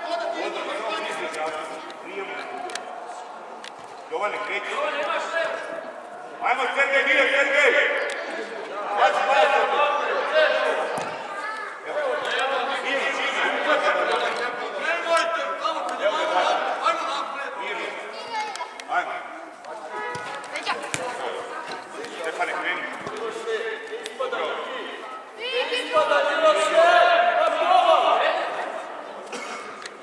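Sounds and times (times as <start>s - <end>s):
voices calling and talking: 0.0s - 30.0s.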